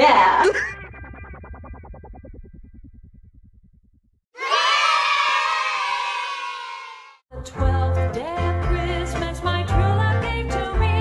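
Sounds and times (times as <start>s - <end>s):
children shouting and cheering: 4.4s - 7.2s.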